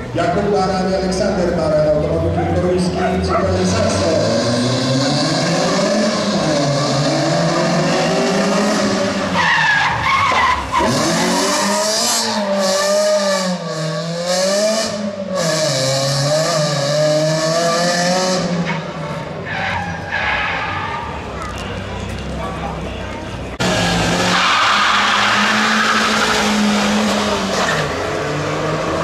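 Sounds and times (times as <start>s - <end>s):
rally car engine revving: 0.3s - 21.3s, 23.5s - 29.0s
tyre squeal and skidding: 5.6s - 13.3s, 18.6s - 21.8s, 23.6s - 28.1s.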